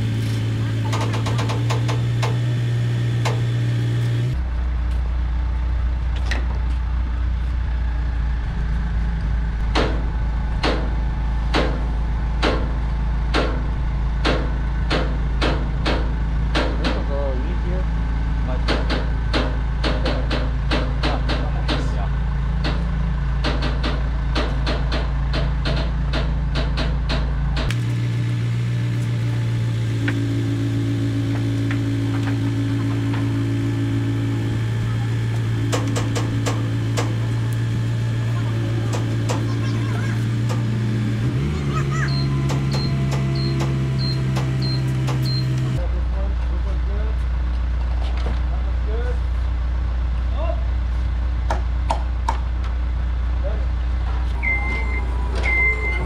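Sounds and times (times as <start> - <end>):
telehandler engine running: 0.0 - 51.8, 52.6 - 56.0
sharp knocks and clacks: 18.6 - 22.0, 22.6 - 27.8, 35.6 - 37.2, 42.4 - 45.3.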